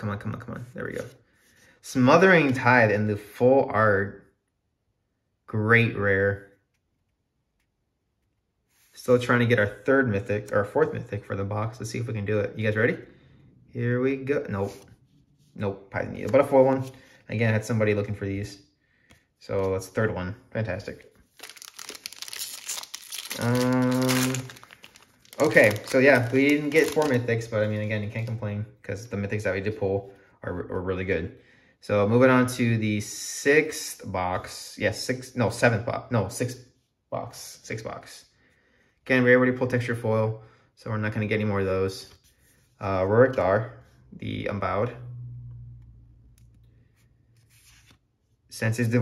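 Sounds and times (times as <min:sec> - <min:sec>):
foil wrapper crinkling: 0:21.3 - 0:28.3
low hum: 0:44.7 - 0:46.8.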